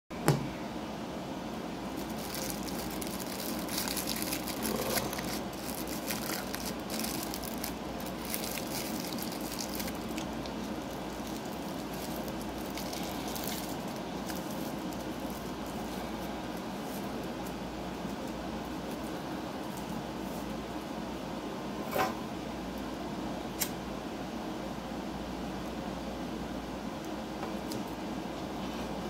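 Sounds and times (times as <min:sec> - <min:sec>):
steady background hum: 0:00.1 - 0:29.0
rolling paper crinkling: 0:01.9 - 0:20.6.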